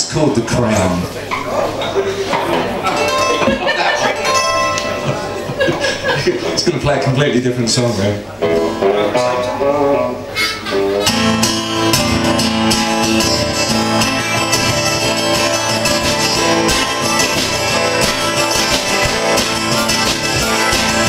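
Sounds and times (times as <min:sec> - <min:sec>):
folk rock band playing: 0:00.0 - 0:21.0
strummed acoustic guitar: 0:01.9 - 0:21.0
bass guitar: 0:08.3 - 0:21.0
harmonica: 0:10.2 - 0:21.0.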